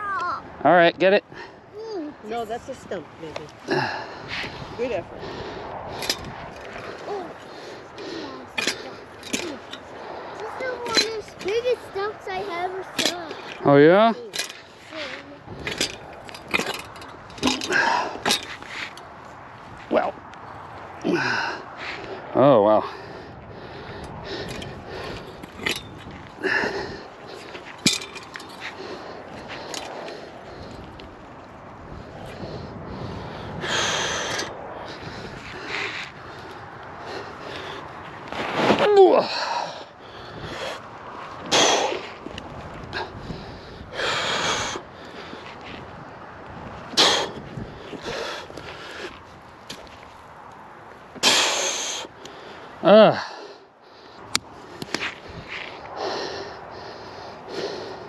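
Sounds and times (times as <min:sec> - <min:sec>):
man breathing hard: 0:03.6 - 0:10.7, 0:14.5 - 0:19.5, 0:20.5 - 0:38.3, 0:39.2 - 0:49.9, 0:51.1 - 0:58.0
man grunting: 0:52.8 - 0:53.3.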